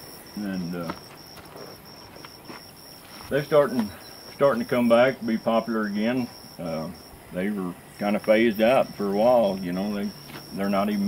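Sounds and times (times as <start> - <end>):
cricket chirping: 0.0 - 11.0.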